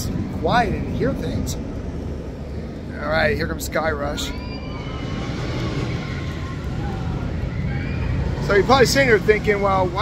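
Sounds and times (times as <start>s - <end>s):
roller coaster rumbling on track: 0.0s - 10.0s.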